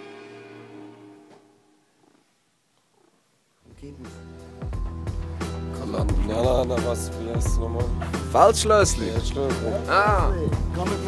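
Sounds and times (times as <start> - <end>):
held music chords: 4.0 - 11.0.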